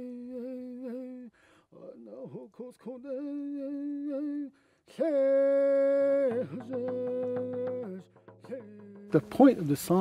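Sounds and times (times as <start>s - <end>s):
person singing long held notes: 0.0s - 9.6s
fast even drum beat: 6.2s - 10.0s.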